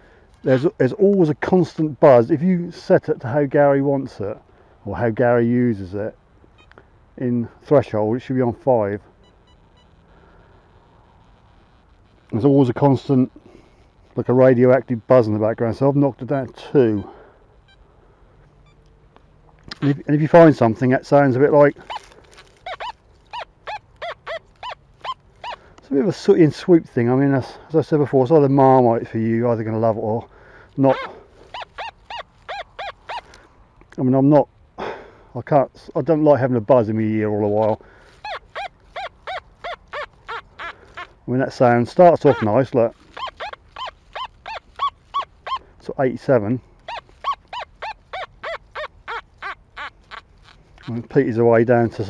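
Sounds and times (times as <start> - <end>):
metal detector squeaky tones: 0.3 - 0.8, 6.5 - 6.8, 8.6 - 13.3, 14.2 - 18.9, 19.7 - 30.1, 30.7 - 33.5, 37.0 - 52.0.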